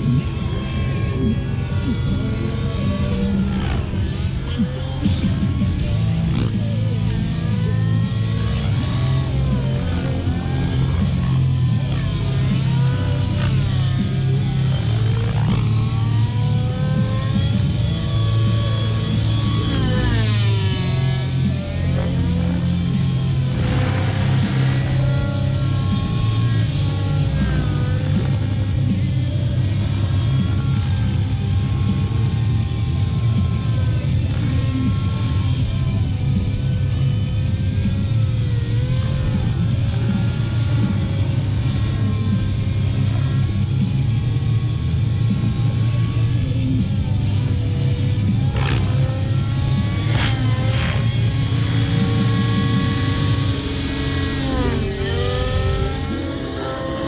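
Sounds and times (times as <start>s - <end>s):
rc helicopter flying: 0.0s - 57.0s.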